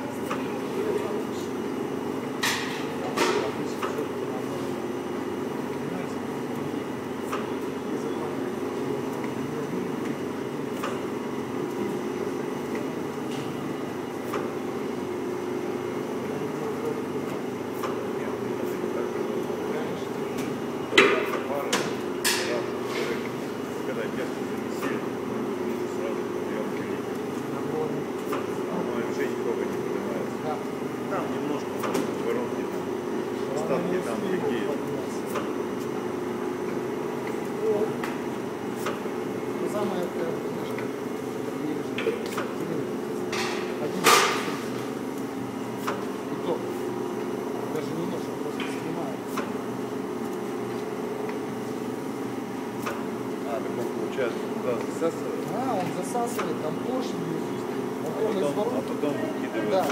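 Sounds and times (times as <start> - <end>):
vacuum pump humming: 0.0 - 59.9.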